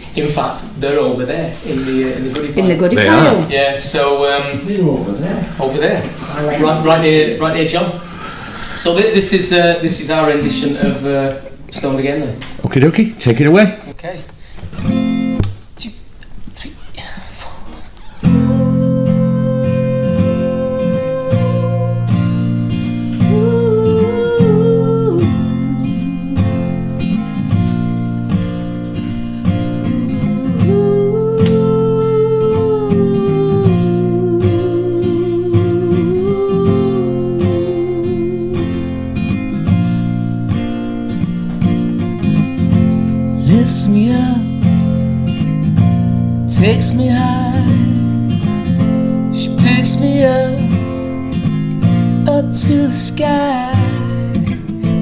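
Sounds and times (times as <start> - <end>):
acoustic guitar strumming: 1.6 - 12.4, 14.8 - 15.7, 18.2 - 55.0.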